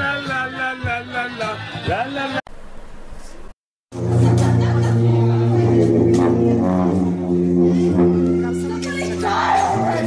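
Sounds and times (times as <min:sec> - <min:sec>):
sousaphones playing low notes: 0:03.9 - 0:10.0.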